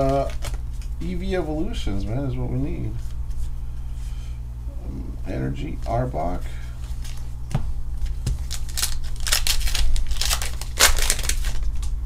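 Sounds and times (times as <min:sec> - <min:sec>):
foil wrapper tearing and crinkling: 0:00.0 - 0:00.9, 0:08.0 - 0:12.0.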